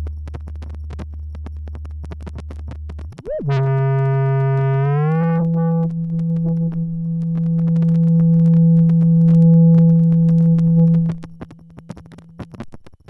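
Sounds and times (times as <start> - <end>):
faint crackly static ticks: 0.0 - 3.2, 6.7 - 13.0
low synthesizer tone: 3.2 - 12.7.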